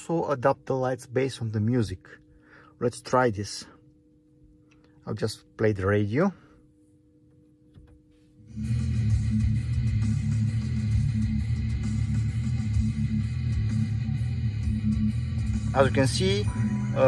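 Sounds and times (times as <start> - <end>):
rock music on car radio: 8.5 - 17.0.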